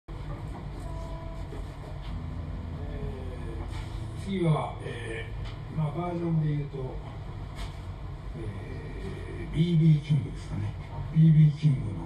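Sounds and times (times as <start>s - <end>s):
amplifier rumble and hum: 0.1s - 12.0s
faint held instrument notes: 0.5s - 6.3s.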